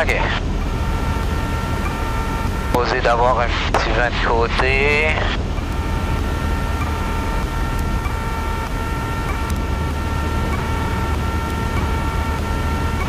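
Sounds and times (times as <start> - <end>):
high-pitched multi-tone whine: 0.0 - 13.0
plane engine idling drone: 0.0 - 13.0.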